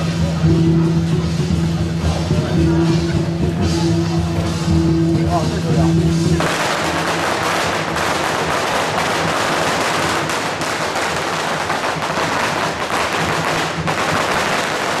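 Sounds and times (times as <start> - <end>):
firecrackers crackling: 0.0 - 15.0.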